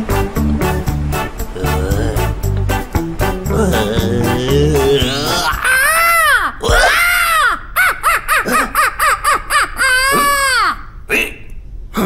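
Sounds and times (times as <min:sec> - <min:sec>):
cartoon character squawking cries: 0:03.8 - 0:08.8, 0:09.8 - 0:11.0.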